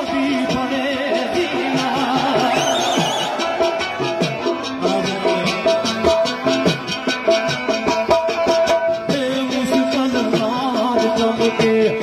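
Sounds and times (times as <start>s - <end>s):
instrumental folk melody: 0.0s - 12.0s
steady percussion beat: 0.0s - 12.0s.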